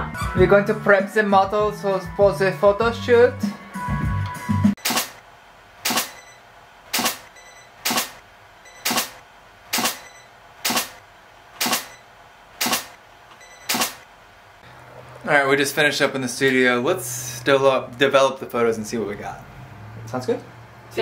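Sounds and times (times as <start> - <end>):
sharp clicks: 5.8 - 6.2, 6.9 - 8.2, 8.8 - 10.0, 10.6 - 11.0, 11.6 - 12.0, 12.6 - 14.1.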